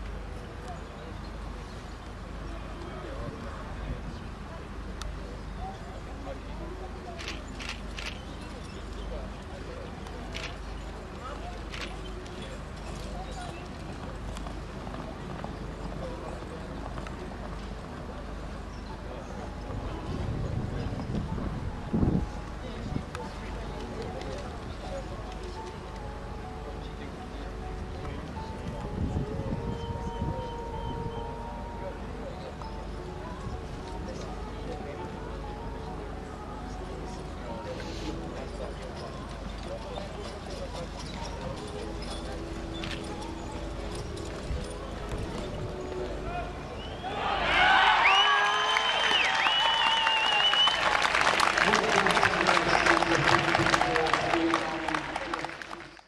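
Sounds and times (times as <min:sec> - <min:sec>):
voices in background: 0:00.0 - 0:56.0.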